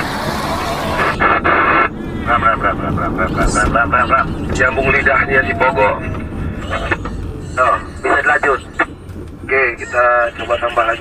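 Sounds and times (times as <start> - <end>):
radio hiss: 0.7 - 2.4, 9.5 - 11.0
clipped voice through radio: 9.5 - 11.0.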